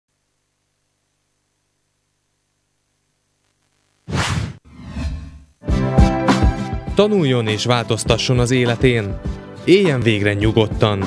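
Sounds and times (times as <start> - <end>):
whoosh sound effect: 4.1 - 5.5
music: 5.6 - 11.0.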